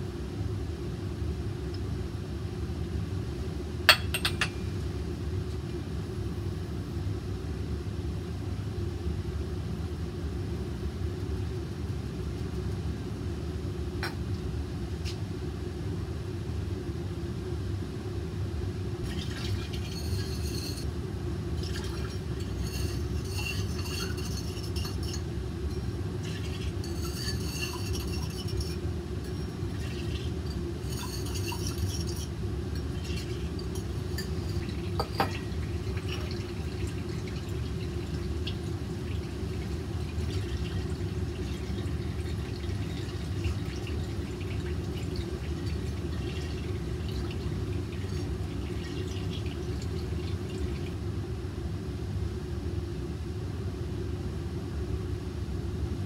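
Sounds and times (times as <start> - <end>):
ventilation hum: 0.0 - 56.0
glassware clinking: 3.9 - 4.6, 19.0 - 20.9, 21.6 - 32.3, 33.0 - 36.4
liquid pouring into glass: 19.0 - 20.8, 21.6 - 51.0.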